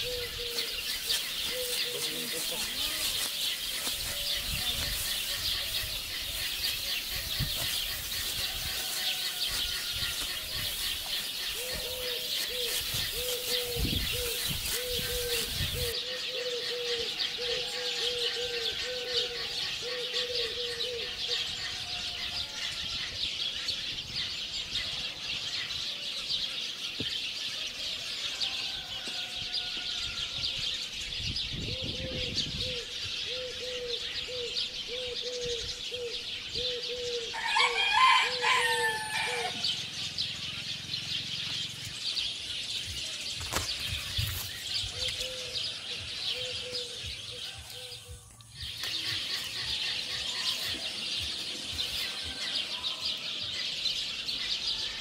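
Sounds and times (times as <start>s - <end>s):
low repeated bird call: 0.0s - 23.9s, 42.4s - 55.0s
high chirping bird chorus: 0.0s - 55.0s.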